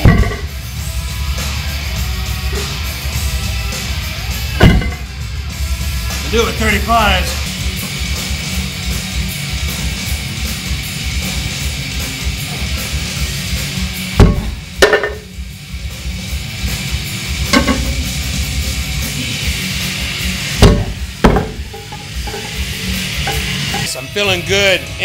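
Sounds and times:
heavy rock music: 0.0 - 25.0
weight plates knocking on floor: 14.2 - 15.3, 17.6 - 18.0.

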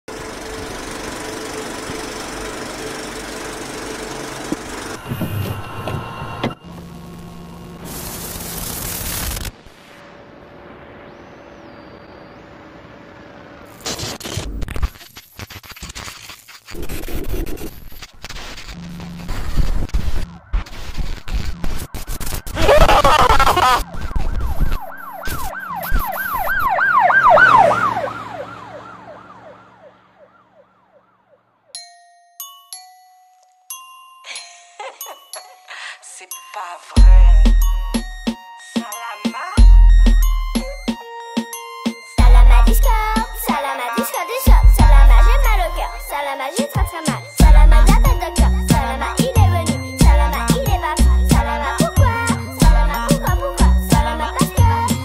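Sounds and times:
tape noise and static: 13.8 - 26.2
emergency siren wailing: 22.4 - 31.7, 39.5 - 43.8.

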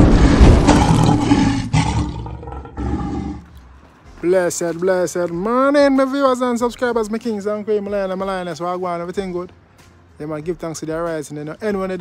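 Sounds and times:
lion roaring: 0.0 - 3.5.

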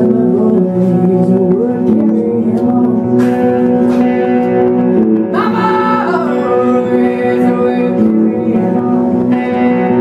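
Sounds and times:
electric guitar through effects: 0.0 - 10.0.

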